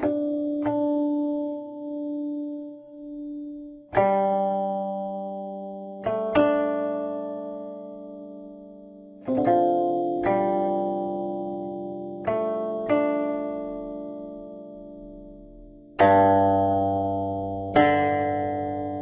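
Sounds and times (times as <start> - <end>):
plucked zither notes: 4.0 - 4.7, 6.0 - 8.2, 9.2 - 19.0.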